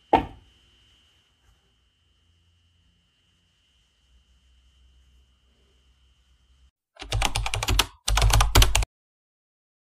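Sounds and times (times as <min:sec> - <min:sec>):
keyboard typing clicks: 0:07.0 - 0:08.9.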